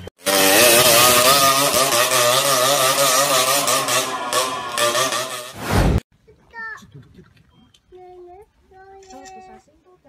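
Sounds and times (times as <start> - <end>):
motorcycle engine revving: 0.0 - 6.0
loud rushing noise: 4.3 - 6.0.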